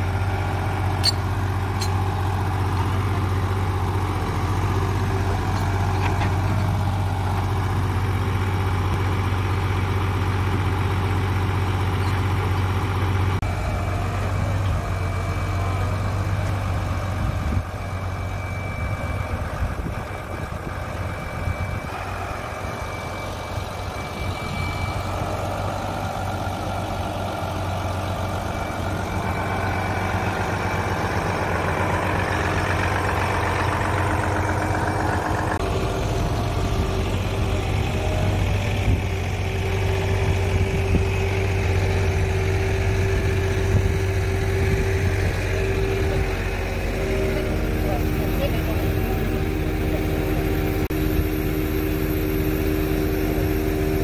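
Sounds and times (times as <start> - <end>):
crane hydraulic hum: 0.0 - 54.0
diesel engine idling: 0.0 - 54.0.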